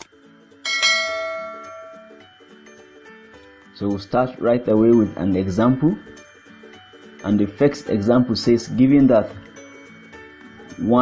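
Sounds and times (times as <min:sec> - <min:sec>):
soft background music: 0:00.0 - 0:11.0
bell ringing: 0:00.6 - 0:02.3.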